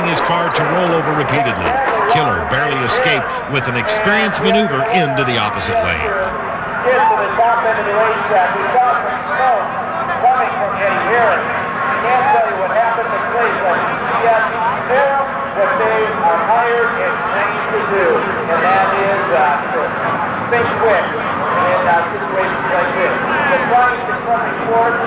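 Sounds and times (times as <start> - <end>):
men talking: 0.0 - 25.0.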